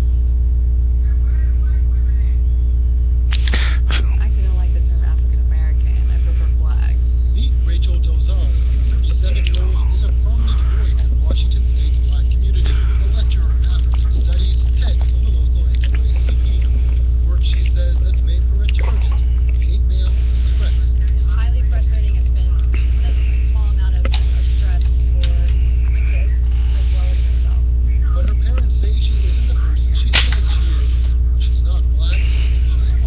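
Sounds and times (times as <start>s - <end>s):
low electrical hum: 0.0s - 33.0s
faint interview speech: 0.9s - 33.0s.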